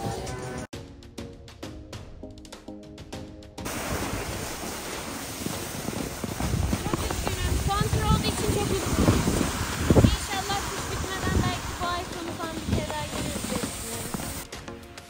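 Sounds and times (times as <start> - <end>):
background music: 0.0 - 9.1, 10.1 - 15.0
wind on microphone: 3.7 - 14.4
snowboard sliding over snow: 3.7 - 14.5.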